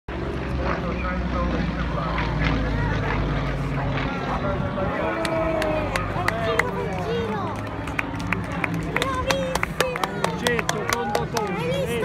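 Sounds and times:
airplane engine drone: 0.1 - 12.0
people talking: 0.5 - 12.0.

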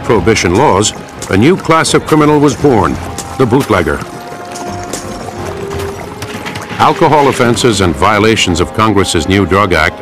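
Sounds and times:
light tapping percussion: 0.4 - 7.9.

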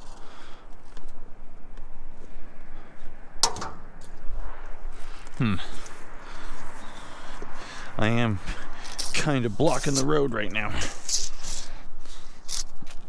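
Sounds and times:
steady background hiss: 0.0 - 12.3
sharp metallic clack: 3.4 - 3.9
person grunting: 5.4 - 5.8.

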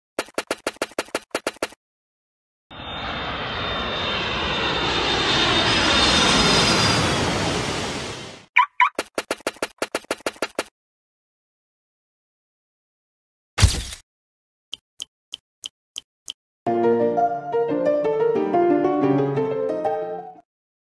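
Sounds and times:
rapid clicks: 0.2 - 1.8, 8.8 - 10.7
jet-like engine noise: 2.7 - 8.5
short chirps: 8.6 - 9.0.

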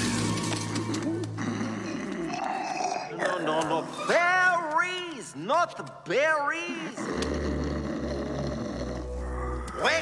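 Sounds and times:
cartoon bear snoring: 7.0 - 9.8.

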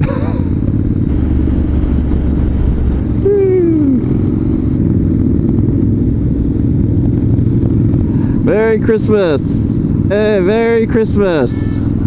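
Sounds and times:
motorcycle engines rumbling: 0.0 - 12.0.

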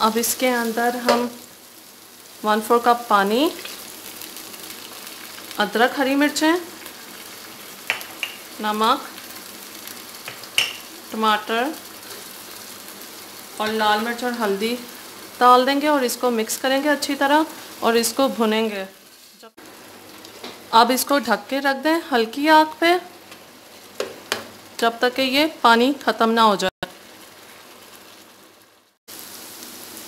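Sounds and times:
chicken frying in oil: 0.0 - 30.0
spoon knocking against pan: 7.8 - 8.4, 10.2 - 10.8.

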